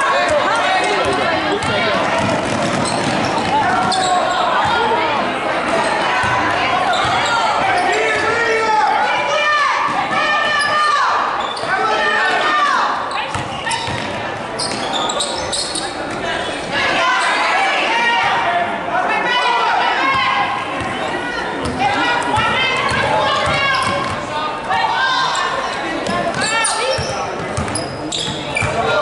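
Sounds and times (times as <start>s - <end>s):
voices echoing in gym: 0.0s - 29.0s
shoes squeaking on court: 0.4s - 4.4s, 5.8s - 8.2s, 11.4s - 11.8s, 13.1s - 16.6s, 25.3s - 28.9s
basketball bouncing: 1.0s - 4.0s, 13.3s - 14.2s.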